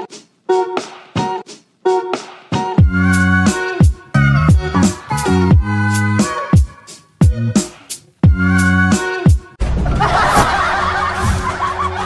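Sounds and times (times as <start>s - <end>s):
music with steady beat: 0.0s - 9.6s
high-pitched snickering laugh: 9.9s - 12.0s.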